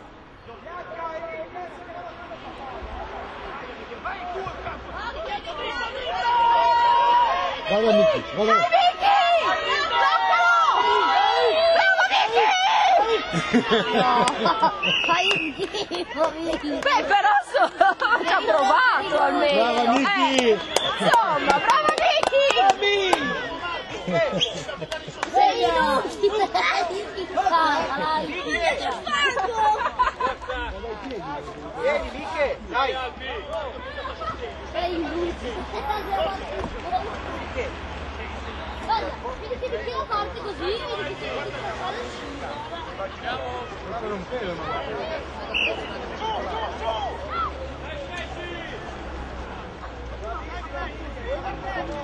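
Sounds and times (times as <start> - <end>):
people shouting and calling out: 0.0 - 52.0
several voices chattering: 0.0 - 52.0.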